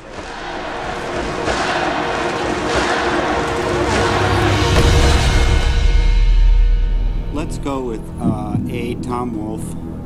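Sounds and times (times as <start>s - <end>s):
cinematic music swell: 0.0s - 10.0s
low rumble: 8.0s - 10.0s.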